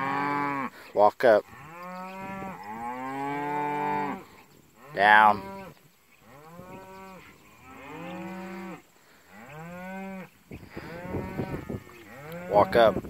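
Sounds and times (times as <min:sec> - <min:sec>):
cows mooing: 0:00.0 - 0:00.8, 0:01.4 - 0:13.0.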